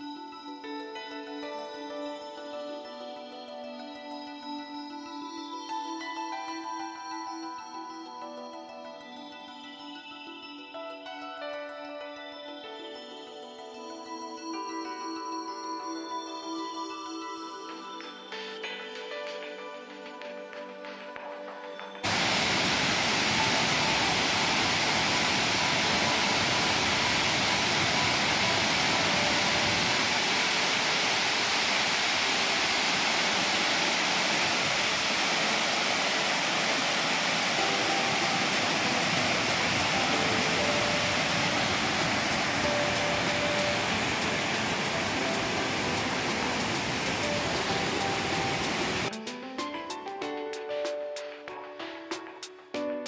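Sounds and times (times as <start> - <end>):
waterfall rushing: 22.0 - 49.1.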